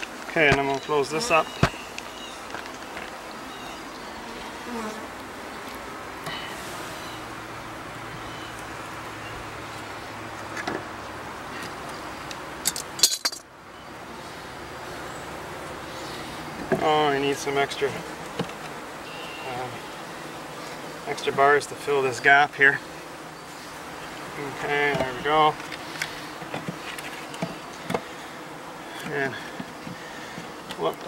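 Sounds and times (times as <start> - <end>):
honeybees buzzing: 0.0 - 31.0.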